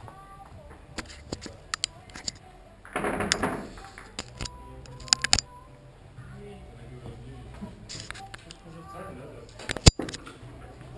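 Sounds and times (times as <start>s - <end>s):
billiard balls clacking: 2.9s - 5.3s.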